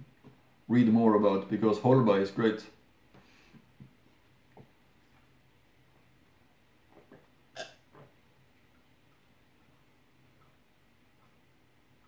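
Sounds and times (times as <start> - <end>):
person gulping beer: 7.0 - 8.1.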